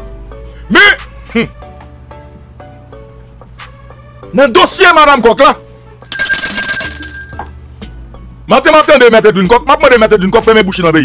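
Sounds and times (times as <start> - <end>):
bright ringing chime: 6.0 - 7.6.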